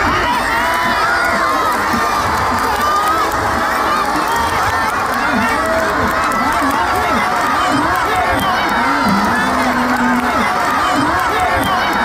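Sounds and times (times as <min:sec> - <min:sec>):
crowd shouting and cheering: 0:00.0 - 0:12.0.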